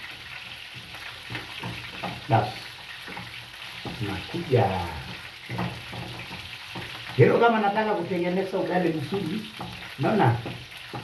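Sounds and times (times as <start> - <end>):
meat sizzling in a frying pan: 0.0 - 11.0
wooden spoon scraping a pot: 0.1 - 11.0.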